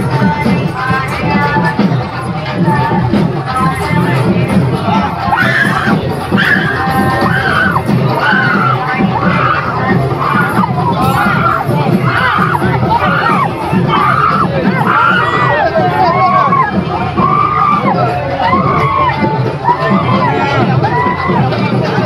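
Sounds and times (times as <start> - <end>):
crowd chanting: 0.0 - 22.0.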